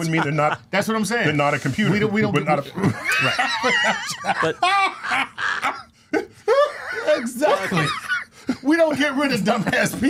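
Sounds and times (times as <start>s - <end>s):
men laughing: 0.0s - 0.7s, 2.6s - 10.0s.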